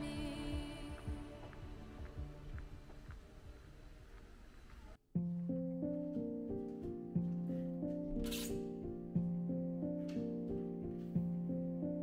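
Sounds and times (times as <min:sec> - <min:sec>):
soft instrumental music: 0:00.0 - 0:04.4, 0:05.2 - 0:12.0.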